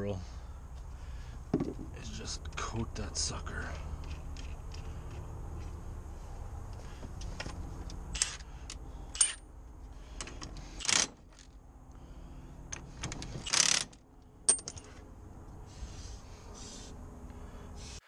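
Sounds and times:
metal tools clinking: 7.3s - 9.4s, 12.7s - 15.0s
impact wrench bursts: 8.1s - 9.4s, 10.6s - 11.3s, 13.4s - 14.0s.

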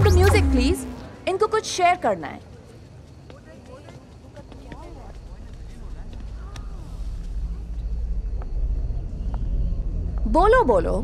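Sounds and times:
low rumbling drone: 0.0s - 1.8s, 6.7s - 11.0s.

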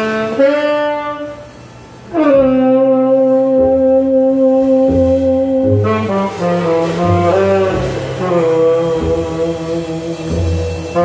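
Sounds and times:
saxophone melody: 0.0s - 11.0s
walking upright bass: 0.0s - 11.0s.

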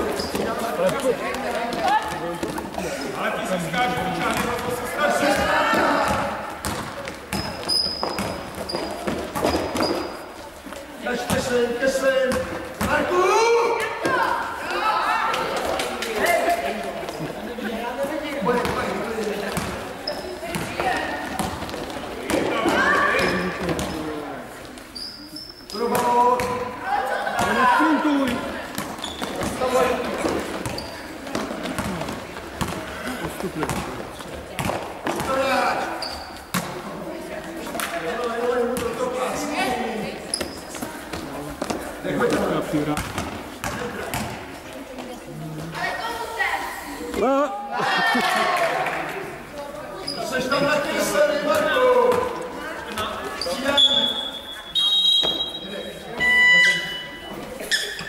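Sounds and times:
people calling and shouting: 0.0s - 58.0s
basketball dribbling on court: 6.0s - 10.1s.

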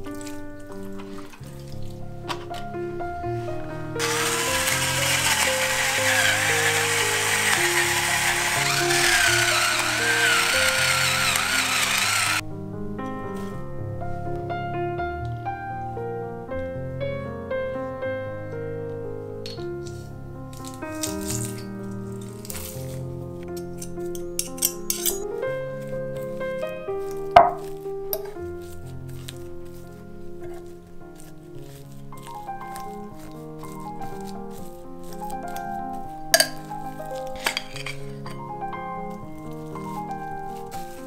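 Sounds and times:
background music: 0.0s - 41.0s
blowtorch flame hissing: 4.0s - 12.4s.

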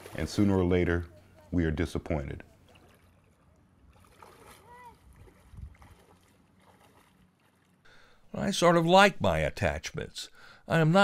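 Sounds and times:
legs wading through water: 0.0s - 0.6s, 2.5s - 7.9s.

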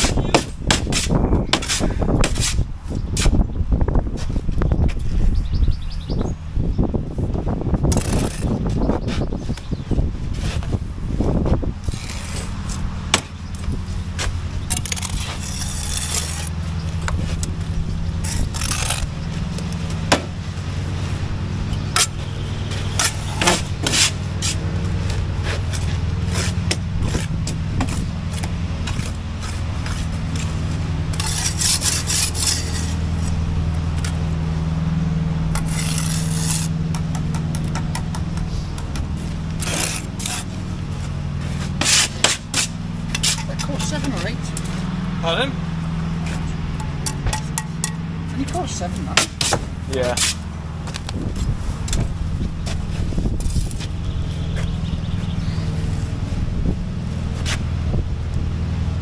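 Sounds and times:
steady low hum: 0.0s - 59.0s
trowels scraping and tapping: 11.8s - 17.6s, 21.9s - 33.4s, 35.5s - 40.6s, 41.4s - 44.7s.

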